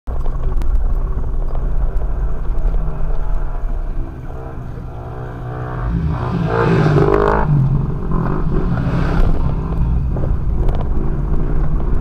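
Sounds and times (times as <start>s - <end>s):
vehicle engine low rumble: 0.1s - 12.0s.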